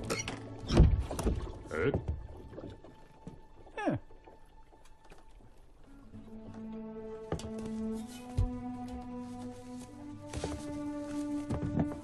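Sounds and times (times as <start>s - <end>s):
wooden boat creaking and knocking: 0.0s - 3.6s, 6.6s - 9.1s, 10.2s - 12.0s.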